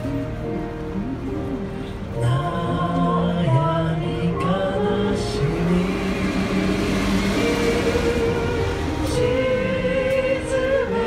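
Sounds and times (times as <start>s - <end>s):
bus passing: 0.0s - 11.0s
group singing a hymn: 2.2s - 11.0s.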